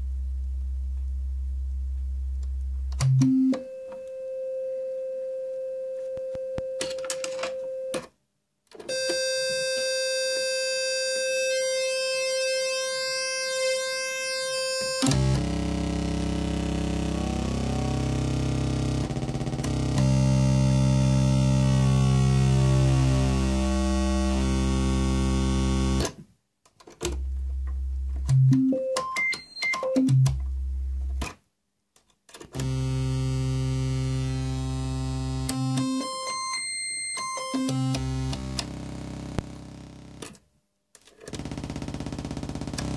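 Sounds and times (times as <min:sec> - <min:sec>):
electronic oscillator tone: 0:32.6 - 0:40.0.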